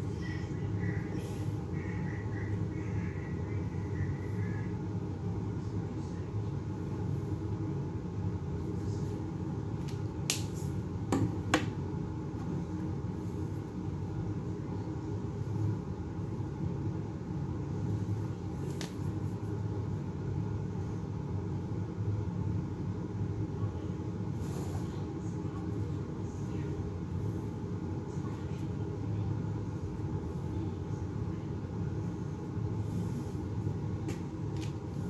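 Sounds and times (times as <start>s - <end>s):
low rumbling background noise: 0.0s - 35.0s.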